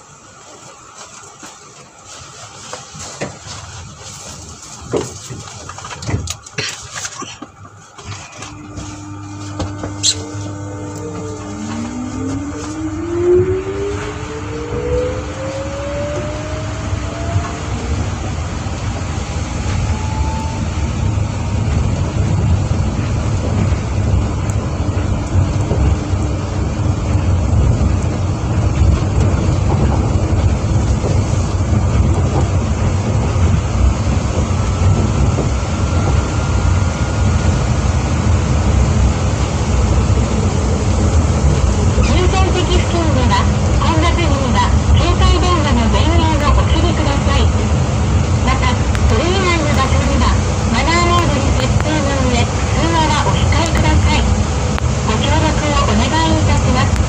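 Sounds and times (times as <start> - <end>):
faint rising whine: 7.8 - 57.0
traction motor whine rising: 7.9 - 57.0.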